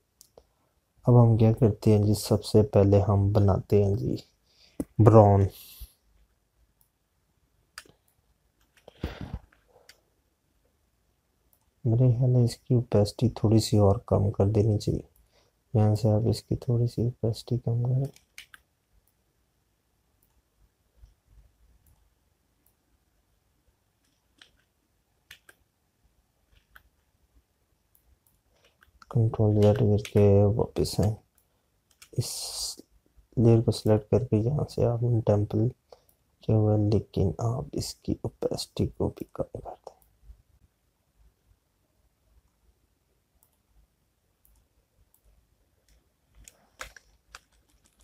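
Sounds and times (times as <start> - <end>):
computer mouse clicks: 18.0 - 19.2, 24.0 - 25.7, 27.9 - 32.2, 43.4 - 43.6, 44.4 - 48.0
keyboard key presses: 45.8 - 48.0.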